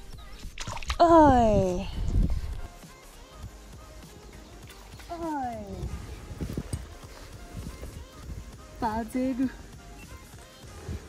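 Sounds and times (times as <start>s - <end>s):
woman's wordless exclamation: 1.0s - 1.9s.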